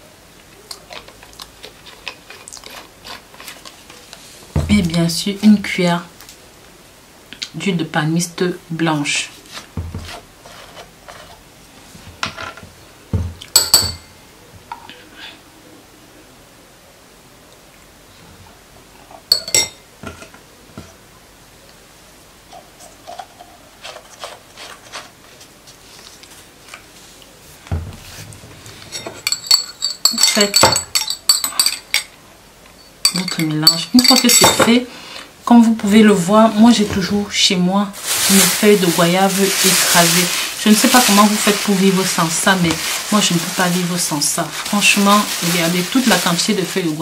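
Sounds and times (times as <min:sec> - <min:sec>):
metal spoon clinking glass bowl: 0:13.5 - 0:14.1, 0:19.3 - 0:19.8, 0:28.9 - 0:32.2, 0:32.8 - 0:34.7
plastic bottle handling: 0:38.0 - 0:47.0.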